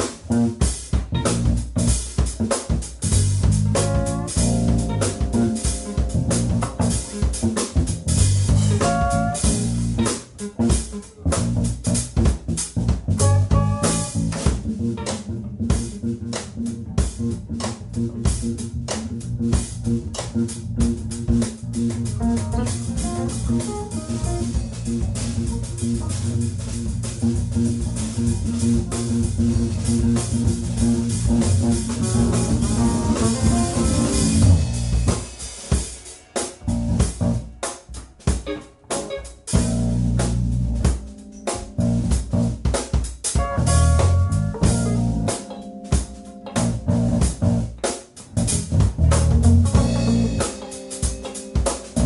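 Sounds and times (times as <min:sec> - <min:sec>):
bass line: 0:00.0 - 0:35.4, 0:36.6 - 0:52.0
drum groove: 0:00.0 - 0:52.0
jazz-funk band playing: 0:00.0 - 0:52.0.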